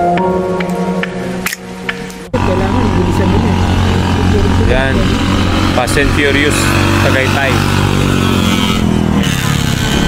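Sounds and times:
motorcycle engines humming: 0:00.7 - 0:10.0
voices: 0:02.3 - 0:08.1.

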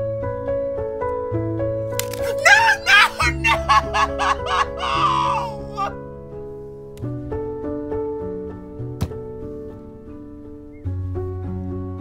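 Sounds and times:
background music: 0:00.0 - 0:12.0
man wailing: 0:02.2 - 0:06.0.

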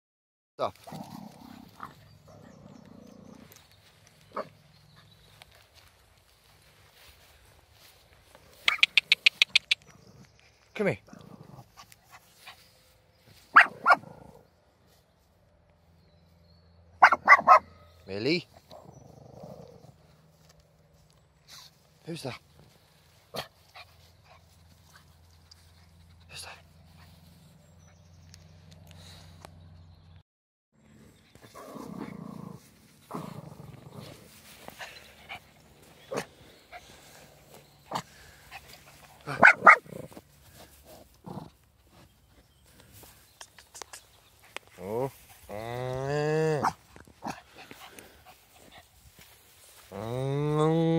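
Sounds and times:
small dog barking: 0:04.3 - 0:04.6, 0:13.5 - 0:14.2, 0:17.0 - 0:17.9, 0:39.2 - 0:40.0.

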